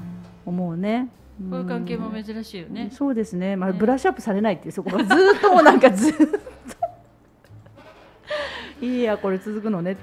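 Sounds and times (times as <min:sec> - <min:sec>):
women laughing: 0:04.9 - 0:07.6.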